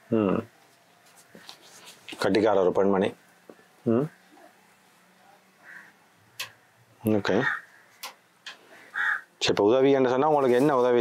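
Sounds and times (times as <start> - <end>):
sharp clicks: 6.4 - 6.6, 8.0 - 8.6.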